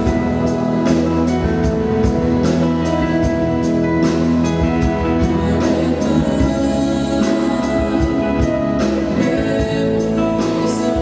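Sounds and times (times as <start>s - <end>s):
drum kit steady beat: 0.0s - 11.0s
electric guitar: 0.0s - 11.0s
live band playing: 0.0s - 11.0s.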